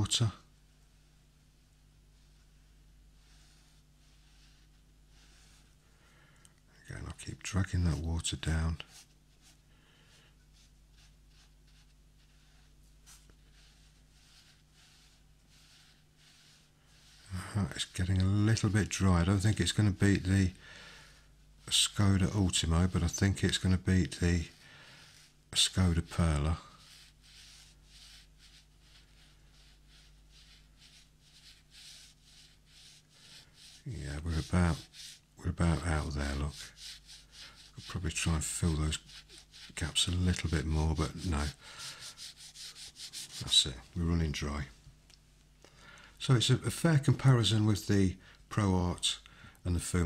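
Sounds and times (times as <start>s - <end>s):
steady low hum: 0.0s - 50.0s
brush swishing on paper: 0.2s - 5.9s, 7.4s - 20.6s, 21.5s - 44.0s.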